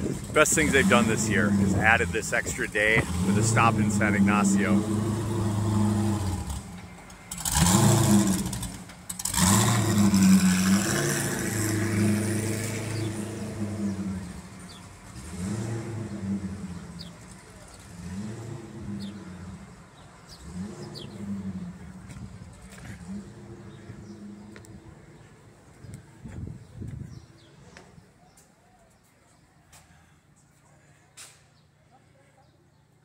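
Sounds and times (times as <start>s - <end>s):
vehicle engines revving: 0.0s - 27.9s.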